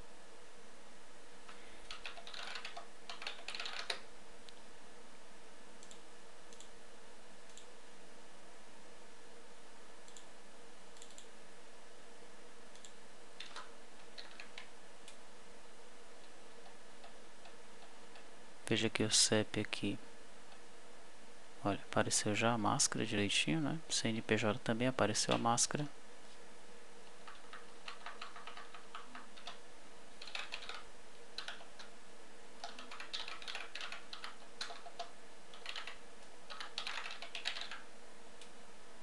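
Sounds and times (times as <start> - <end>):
steady background hiss: 0.0 - 39.0
computer keyboard typing: 1.8 - 4.1, 11.0 - 11.3, 12.8 - 15.2, 27.2 - 29.6, 30.2 - 31.9, 32.6 - 37.9
mouse clicks: 11.0 - 11.3.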